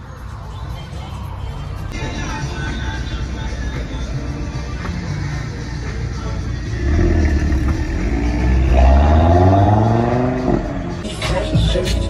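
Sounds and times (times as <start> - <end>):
car engine accelerating hard: 6.7 - 11.0.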